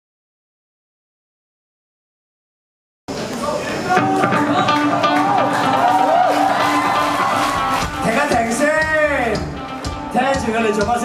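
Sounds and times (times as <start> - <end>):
crowd noise: 3.1 - 11.0
amplified rock band playing: 3.9 - 11.0.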